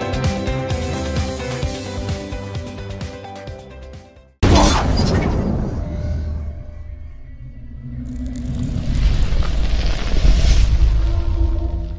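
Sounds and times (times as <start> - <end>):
music: 0.0 - 4.4
low rumble: 4.4 - 11.9.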